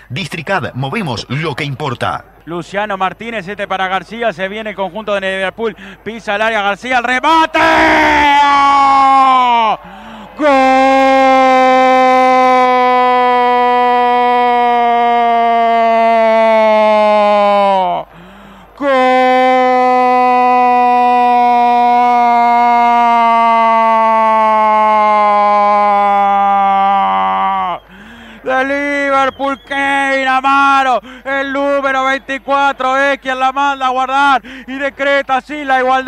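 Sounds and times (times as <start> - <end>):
quick breath: 5.8 - 6.0, 9.8 - 10.4, 18.1 - 18.8, 27.9 - 28.5, 31.0 - 31.3, 34.4 - 34.7
announcer shouting: 7.3 - 9.7.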